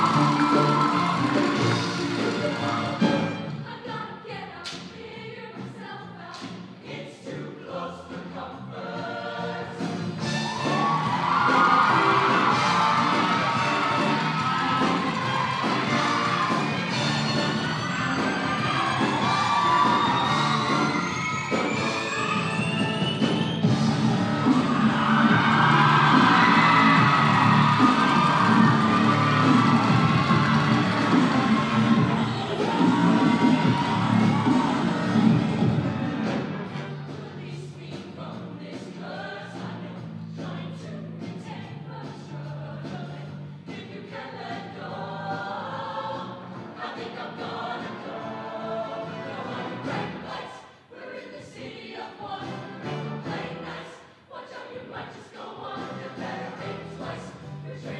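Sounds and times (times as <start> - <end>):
choir singing with instruments: 0.0 - 57.9.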